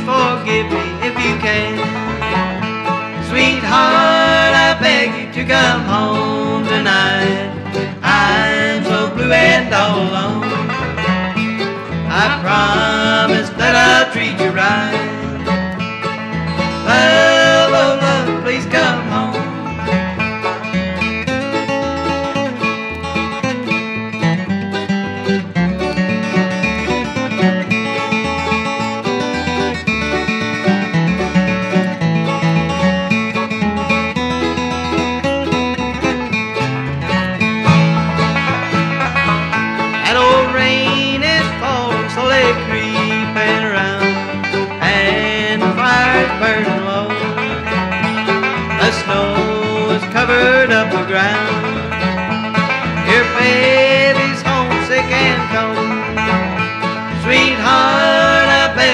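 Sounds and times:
acoustic guitar: 0.0 - 58.9
banjo: 0.0 - 58.9.

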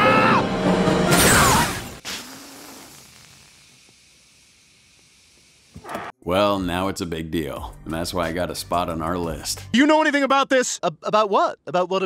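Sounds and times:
hissing from crashed car: 1.2 - 5.8.

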